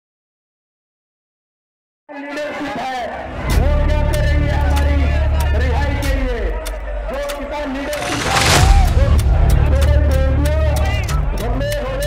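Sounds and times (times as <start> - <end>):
men talking: 2.2 - 12.0
loud steady low rumble: 7.3 - 11.5.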